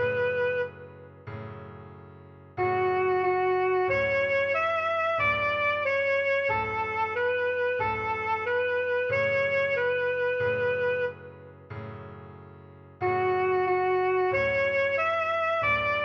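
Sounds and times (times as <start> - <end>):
alto saxophone melody: 0.0 - 0.9, 2.6 - 11.4, 13.0 - 16.0
backing track low chords: 0.0 - 16.0.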